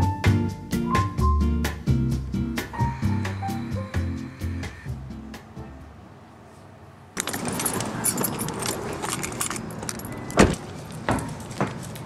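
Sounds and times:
passing street traffic: 0.0s - 12.0s
keys jangling: 7.2s - 12.0s.

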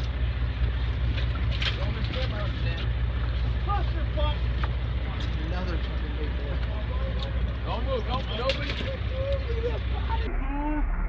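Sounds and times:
boat engine droning: 0.0s - 11.0s
indistinct voices: 1.6s - 11.0s.

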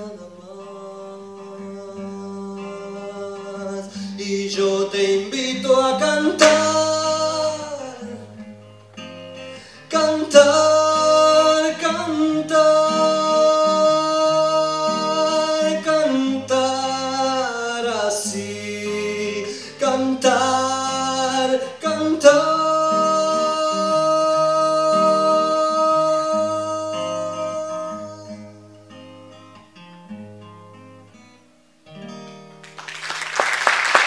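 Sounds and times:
man singing long notes: 0.0s - 8.4s, 9.8s - 28.8s
plucked acoustic guitar: 0.0s - 32.9s.

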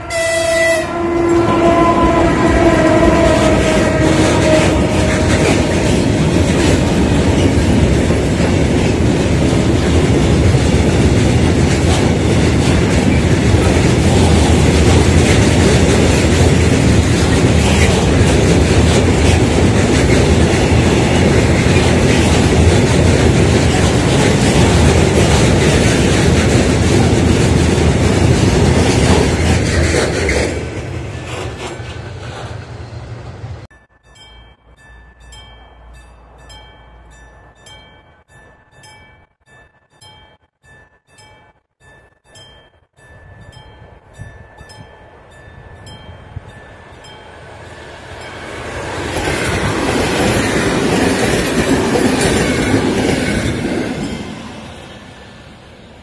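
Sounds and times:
freight train rumble and wheel clatter: 0.0s - 56.0s
rushing rail noise: 0.0s - 56.0s.

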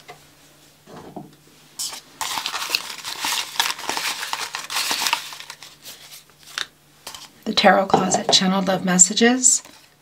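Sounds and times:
paper envelopes rustling: 1.8s - 7.3s, 9.6s - 10.0s.

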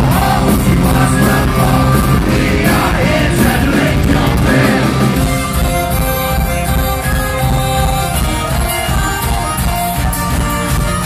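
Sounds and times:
person yelling singing: 0.0s - 5.2s
metal band playing live: 0.0s - 11.0s.

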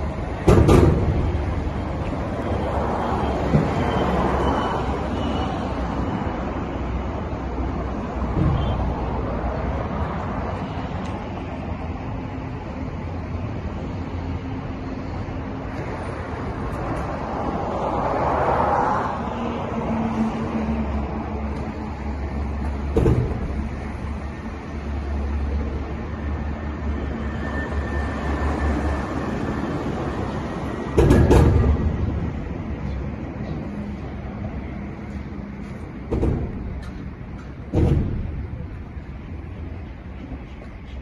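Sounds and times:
road traffic rumble: 0.0s - 41.0s.

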